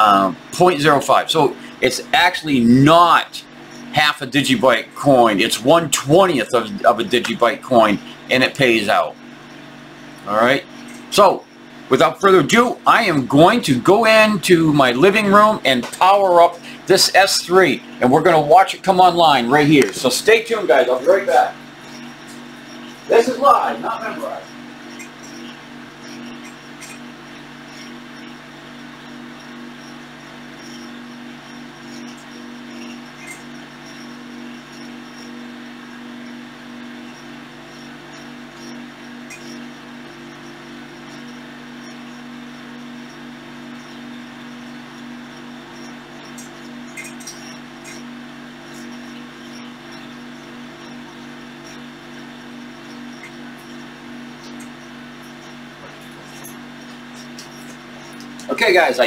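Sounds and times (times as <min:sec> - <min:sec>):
low electrical hum: 0:00.0 - 0:59.0
faint clicks: 0:43.8 - 0:50.9.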